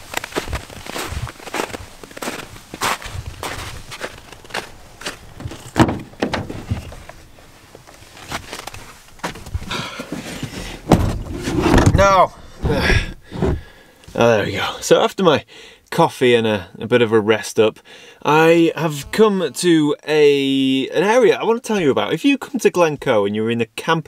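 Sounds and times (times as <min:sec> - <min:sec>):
footsteps crunching on snow: 0:00.0 - 0:11.6
car door shutting thump: 0:05.4 - 0:06.8, 0:10.4 - 0:13.7
car door unlatching clunk: 0:05.4 - 0:07.0, 0:10.2 - 0:13.6.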